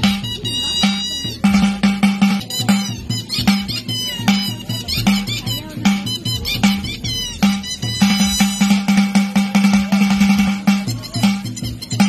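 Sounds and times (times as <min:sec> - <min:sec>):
music with steady beat: 0:00.0 - 0:12.0.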